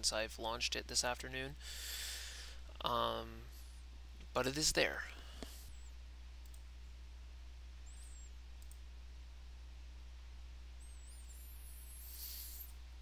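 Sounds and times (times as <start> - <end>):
low electrical hum: 0.0 - 13.0
computer mouse clicks: 6.4 - 6.7.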